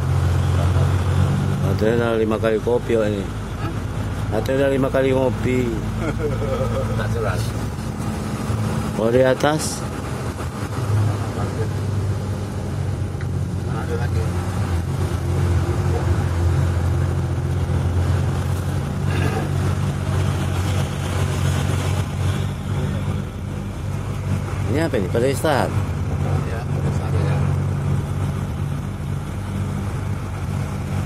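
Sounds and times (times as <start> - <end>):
truck engine running: 0.0 - 31.0.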